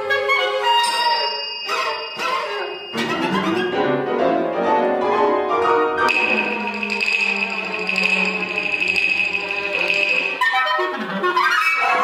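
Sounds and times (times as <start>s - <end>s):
chamber ensemble playing: 0.4s - 11.4s.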